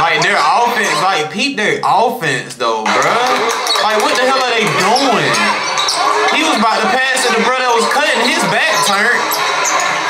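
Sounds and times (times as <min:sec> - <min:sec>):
crowded gym noise: 0:00.0 - 0:01.5, 0:02.8 - 0:10.0
people talking: 0:00.0 - 0:10.0.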